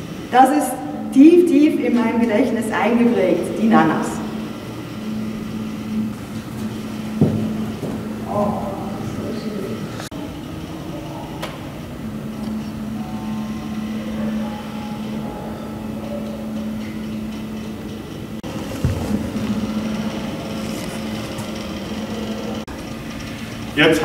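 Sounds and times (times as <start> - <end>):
printer motor and fan hum: 0.0 - 24.0
stepper motors whining: 0.0 - 24.0.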